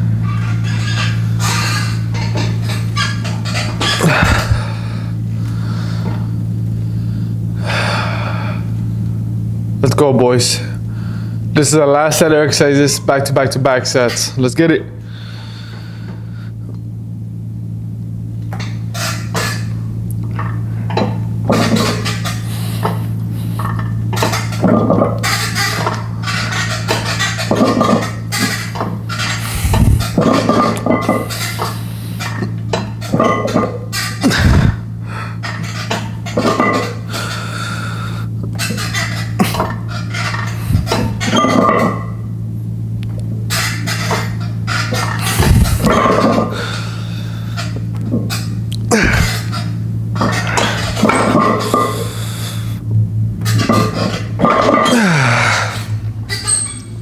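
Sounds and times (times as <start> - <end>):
steady low hum: 0.0 - 57.0
gym equipment clanking: 23.6 - 34.8, 35.4 - 37.0, 47.6 - 52.2.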